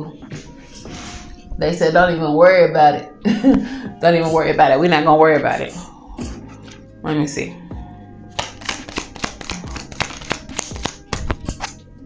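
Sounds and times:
cards being shuffled: 8.4s - 11.8s.

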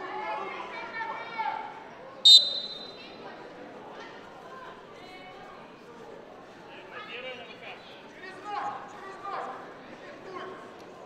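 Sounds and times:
referee whistle blast: 2.3s - 3.0s
crowd murmur: 2.3s - 6.6s.

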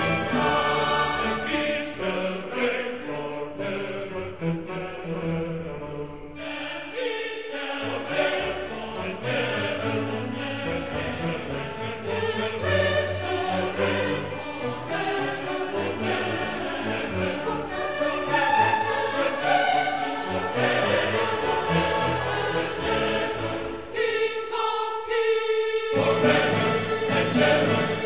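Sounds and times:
orchestral music: 0.0s - 24.3s, 25.9s - 28.0s
choir singing: 0.0s - 28.0s.

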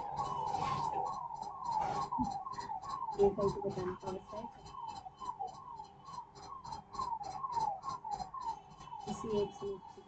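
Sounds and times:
rhythmic squeaking chirp: 0.0s - 10.0s.

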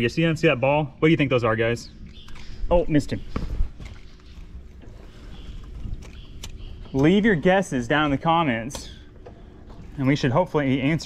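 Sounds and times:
faint steady hum: 0.0s - 11.0s
water around boat: 1.9s - 11.0s.

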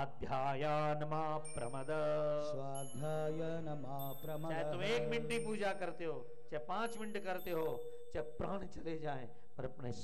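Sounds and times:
man chanting: 0.0s - 10.0s
short breath: 7.8s - 8.1s.

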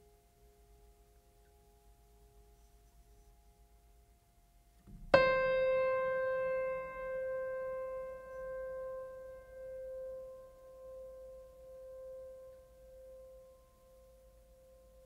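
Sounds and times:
long ringing piano note: 5.1s - 13.7s.

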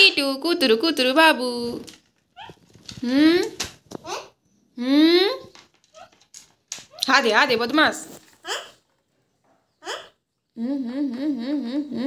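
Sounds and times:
person humming with vibrato: 10.6s - 12.0s.

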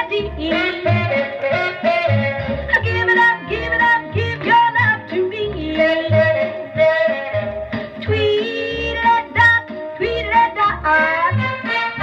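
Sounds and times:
bouncing bass line: 0.0s - 12.0s
rock and roll record with orchestra: 0.0s - 12.0s.

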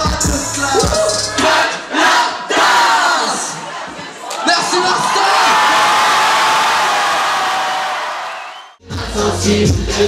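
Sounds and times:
concert crowd cheering: 4.2s - 8.8s.

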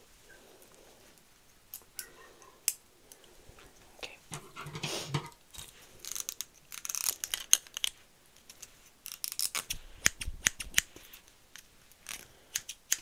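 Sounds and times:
scissors snipping hair: 12.0s - 13.0s.

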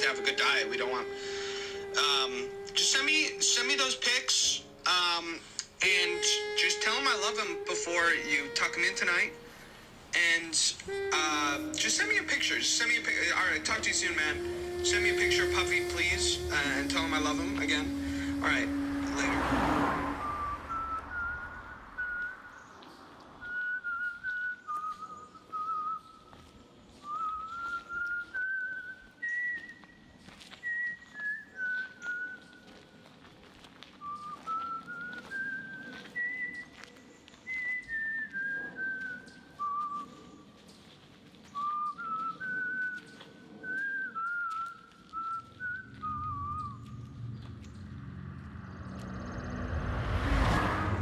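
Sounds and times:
person whistling a slow tune: 20.1s - 22.8s, 23.4s - 32.8s, 34.0s - 40.4s, 41.5s - 47.5s.

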